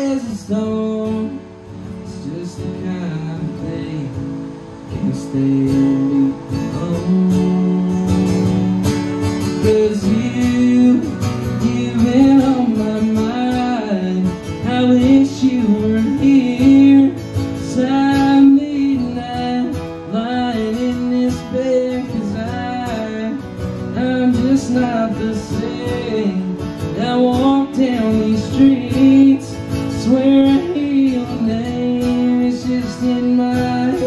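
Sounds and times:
acoustic guitars strumming: 0.0s - 34.0s
man singing: 0.0s - 34.0s.

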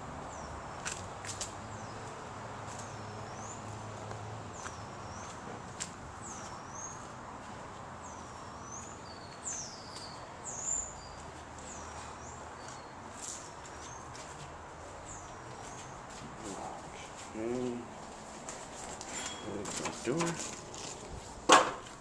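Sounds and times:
outdoor background hiss: 0.0s - 22.0s.

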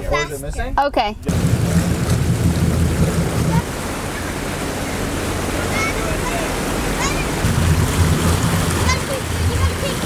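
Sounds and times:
churning wake water: 1.2s - 10.0s
low rumble: 1.2s - 10.0s.

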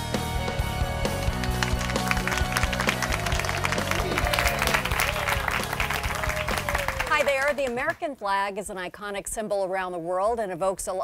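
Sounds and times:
theme music: 0.0s - 7.6s
audience clapping: 0.8s - 8.1s.

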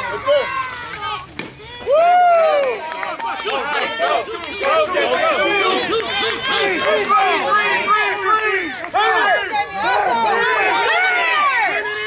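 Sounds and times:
children calling and chattering: 0.0s - 2.0s, 2.7s - 12.0s.

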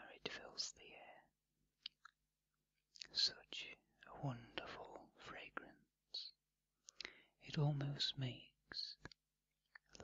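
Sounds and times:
soft close whispering: 0.0s - 2.1s, 3.0s - 10.0s.

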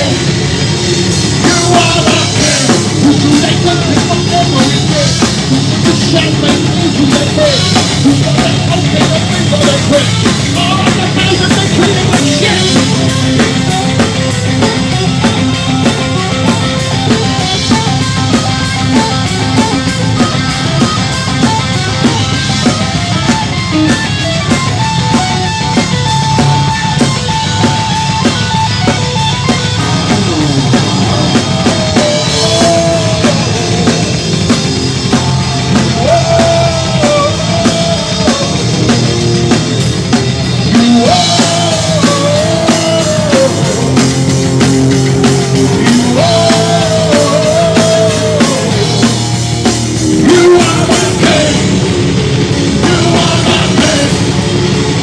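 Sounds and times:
heavy metal band playing: 0.0s - 55.0s
lead guitar bending notes: 10.2s - 55.0s.

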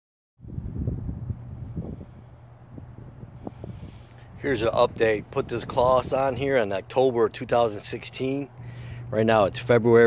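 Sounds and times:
wind rumble on microphone: 0.4s - 6.9s.

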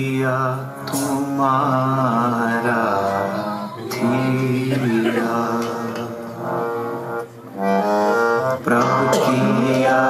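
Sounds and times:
harmonium playing sustained chords: 0.0s - 10.0s.

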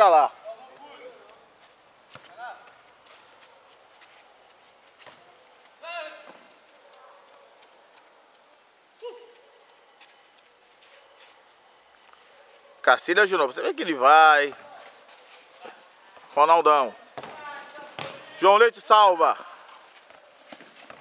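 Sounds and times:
ball being kicked: 17.2s - 18.4s.

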